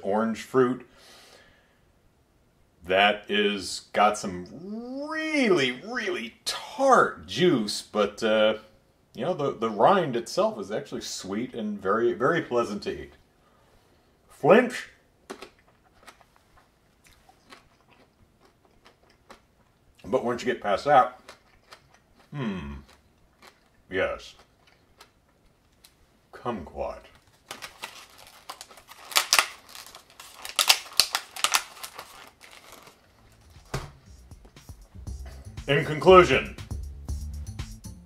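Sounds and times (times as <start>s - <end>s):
man chewing fruit: 15.2s - 20.0s, 21.1s - 26.0s
plastic container clicking and crackling: 27.2s - 33.0s.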